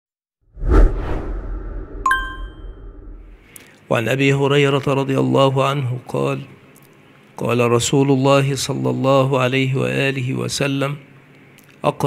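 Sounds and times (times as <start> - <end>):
whoosh: 0.5 - 3.4
deep low rumble: 0.6 - 3.4.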